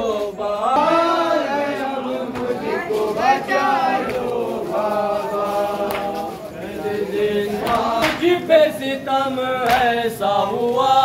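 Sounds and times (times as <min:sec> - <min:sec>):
voices singing a lament: 0:00.0 - 0:11.0.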